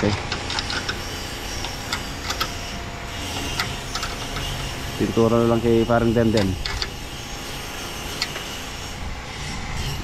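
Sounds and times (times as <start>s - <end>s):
low mechanical hum: 0.0s - 10.0s.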